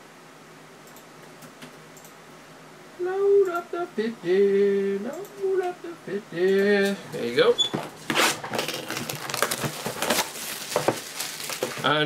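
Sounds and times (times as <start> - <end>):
person singing drawn-out syllables: 3.0 - 7.1.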